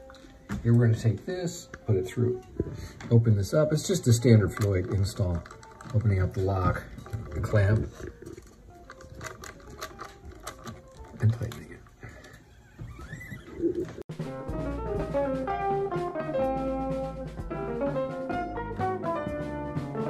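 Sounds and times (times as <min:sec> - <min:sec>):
background music with guitar and bass: 0:13.1 - 0:20.0.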